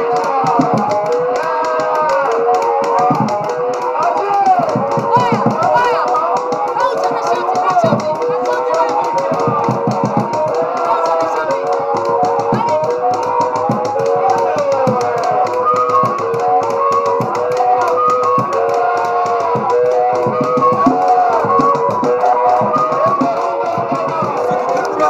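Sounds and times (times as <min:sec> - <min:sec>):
fast dance music: 0:00.0 - 0:25.0.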